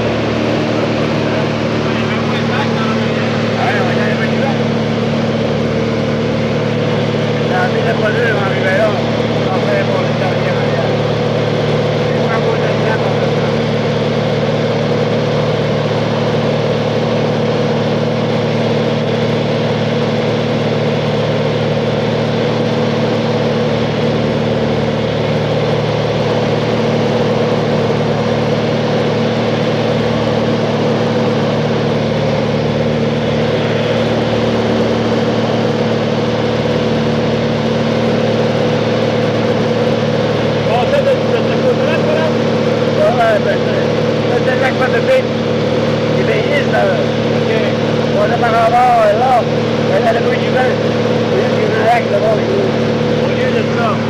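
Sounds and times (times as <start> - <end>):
propeller plane engine drone: 0.0 - 54.0.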